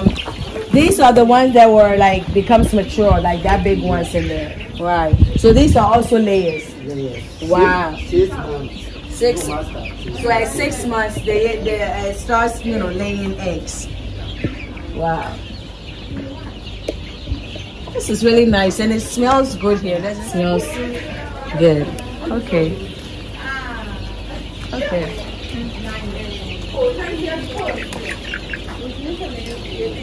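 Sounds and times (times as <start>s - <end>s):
chicks peeping: 0.0s - 30.0s.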